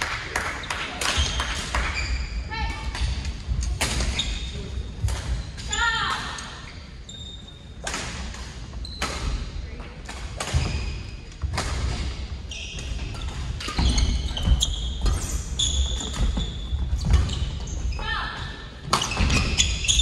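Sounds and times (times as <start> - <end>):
sneakers squeaking: 0.6 - 20.0.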